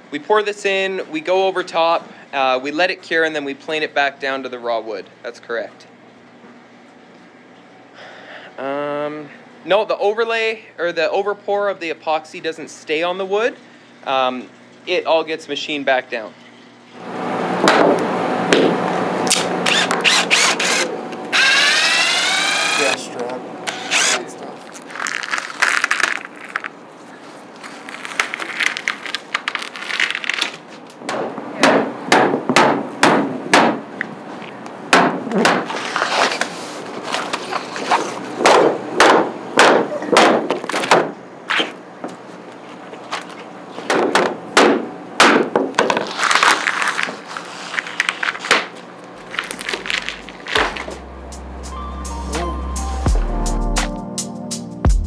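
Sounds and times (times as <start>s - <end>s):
hammer knocking on wooden board: 31.1s - 33.8s.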